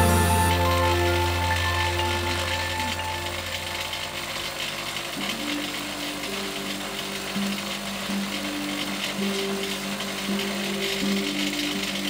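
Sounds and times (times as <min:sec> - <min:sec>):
background music: 0:00.0 - 0:12.0
bench grinder whirring: 0:00.0 - 0:12.0.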